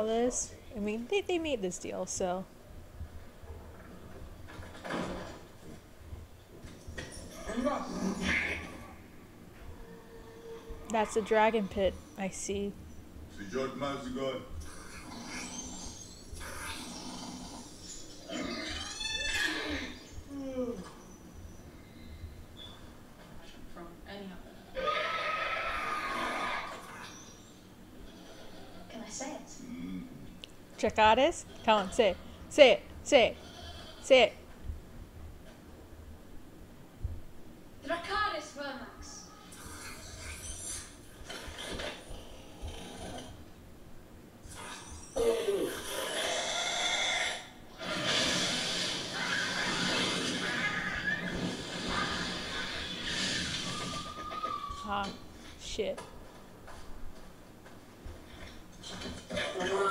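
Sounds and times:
dragon screech: 24.8s - 27.1s, 44.5s - 54.9s
dragon snorting and breathing: 45.7s - 50.4s.

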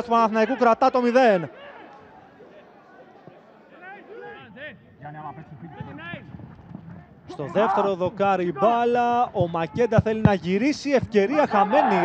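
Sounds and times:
men shouting and calling: 0.0s - 6.3s, 6.9s - 12.0s.

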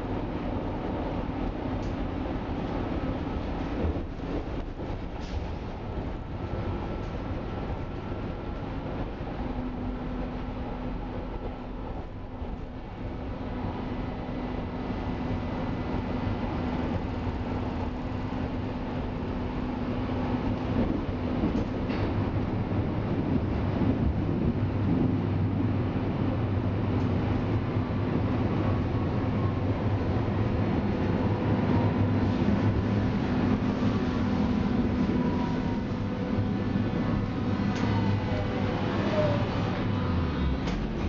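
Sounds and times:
steady train hum: 0.0s - 41.0s
train wheels rumbling on rails: 0.0s - 41.0s.

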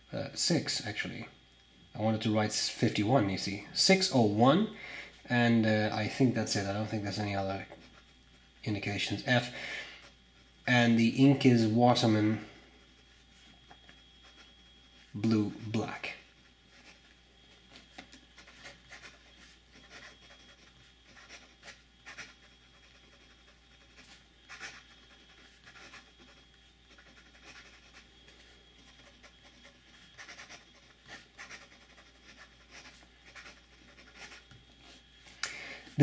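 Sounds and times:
pen nib scratching paper: 16.2s - 35.0s.

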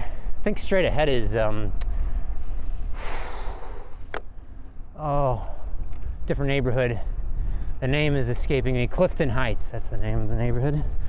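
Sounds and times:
wind and road rumble: 0.0s - 11.0s
person exhaling: 2.4s - 4.1s.

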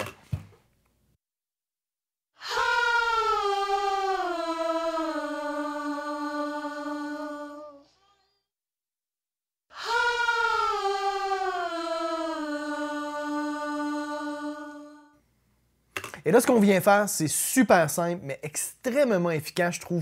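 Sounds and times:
distorted backing vocals singing: 2.4s - 8.1s, 9.7s - 15.2s.

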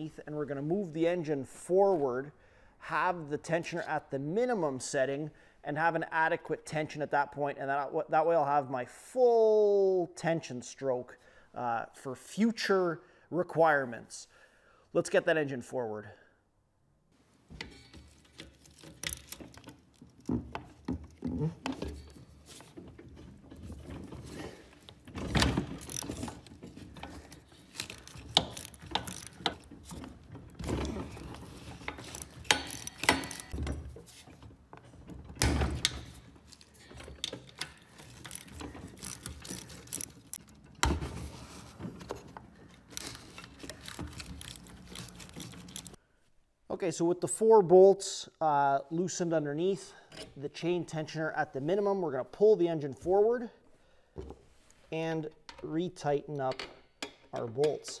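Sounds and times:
socket ratchet clicking: 25.7s - 30.0s, 31.7s - 33.6s.

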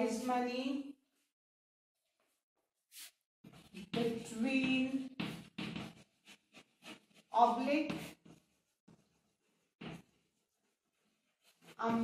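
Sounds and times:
chalk scraping on blackboard: 2.9s - 12.0s.

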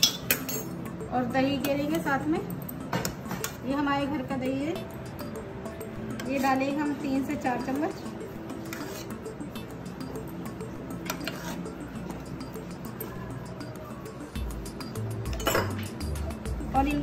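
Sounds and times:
steel spoon clinking against bowl: 0.0s - 0.8s, 15.2s - 15.9s
background music with bass beat: 14.2s - 17.0s.

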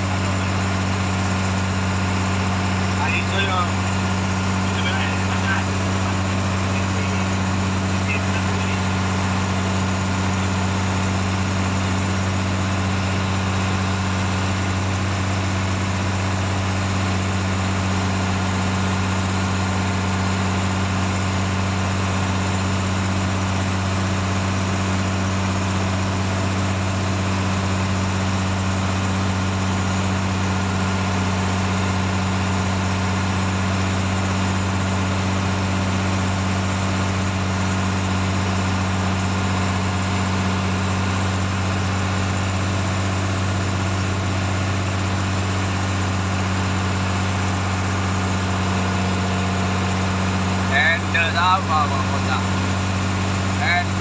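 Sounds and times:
boat engine droning: 0.0s - 54.0s.

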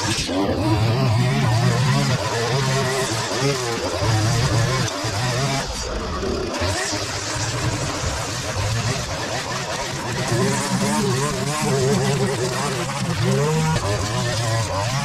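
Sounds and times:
string trimmer running: 0.0s - 15.0s.

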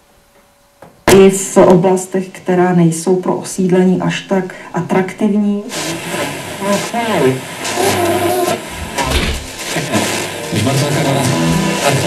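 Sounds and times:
radio static hiss: 3.7s - 12.0s
snatches of radio broadcast: 5.6s - 12.0s.

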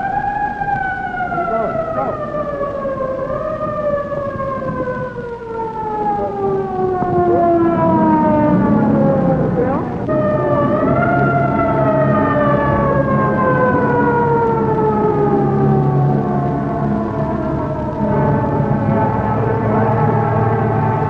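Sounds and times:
siren wailing: 0.0s - 21.0s.

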